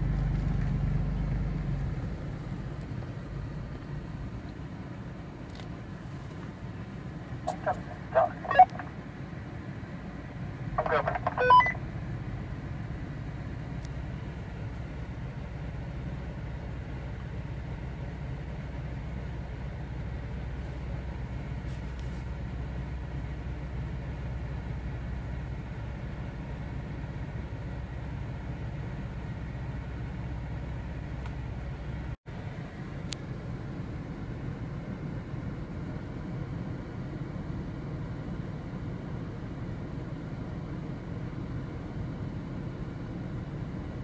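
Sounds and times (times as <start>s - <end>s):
engine low rumble: 0.0s - 44.0s
short high beep: 7.5s - 8.9s, 10.8s - 11.8s.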